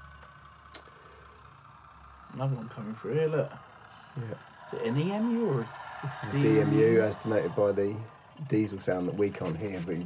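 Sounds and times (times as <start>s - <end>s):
model train humming: 0.0s - 10.0s.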